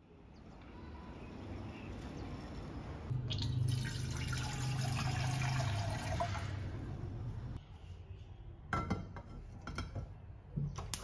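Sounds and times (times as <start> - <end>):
tap water pouring into saucepan: 3.3 - 6.6.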